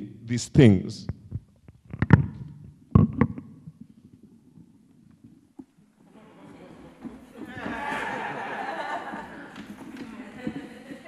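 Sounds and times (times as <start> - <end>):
microphones thumping on wooden floor: 1.0 - 3.9.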